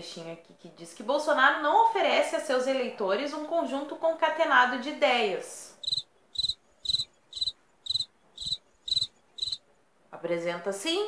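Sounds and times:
cricket chirps: 5.8 - 9.6.

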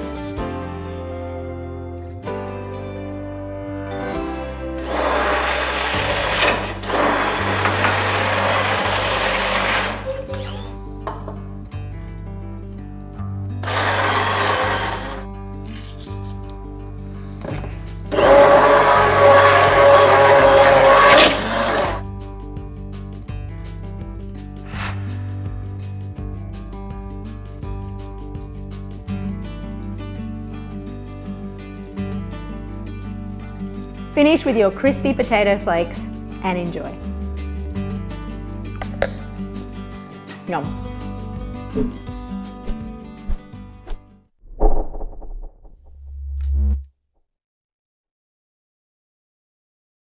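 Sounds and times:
background music: 0.0 - 44.0
electric blender motor: 4.8 - 10.7, 13.6 - 15.3, 18.1 - 22.0.

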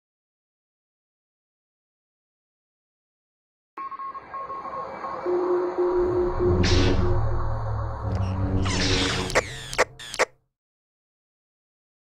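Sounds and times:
sharp mechanical clicks: 9.0 - 10.3.

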